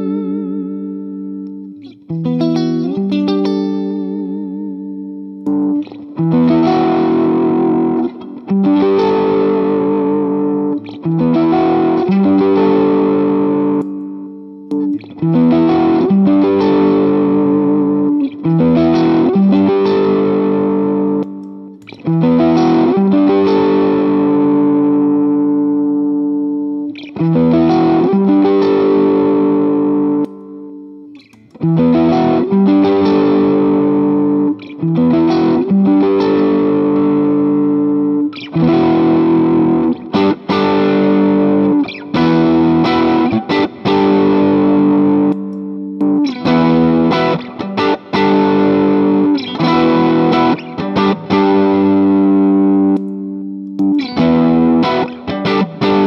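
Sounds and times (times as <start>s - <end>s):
overdriven electric guitar chords: 0.0s - 56.0s.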